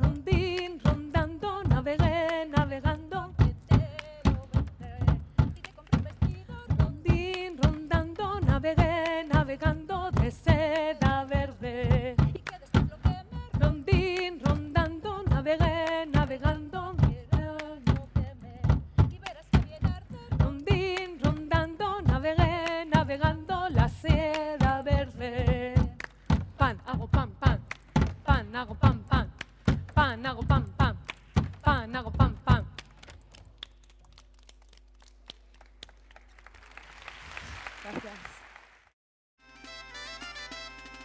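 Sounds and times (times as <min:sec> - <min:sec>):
hand claps: 0:00.5 - 0:01.2, 0:03.4 - 0:04.7, 0:05.4 - 0:06.3, 0:12.2 - 0:13.2, 0:19.2 - 0:20.0, 0:20.9 - 0:21.5, 0:22.6 - 0:23.1, 0:24.3 - 0:24.7, 0:25.9 - 0:26.5, 0:27.6 - 0:28.2, 0:29.3 - 0:30.0, 0:30.9 - 0:31.7, 0:32.5 - 0:38.9
audience applause: 0:33.8 - 0:38.9.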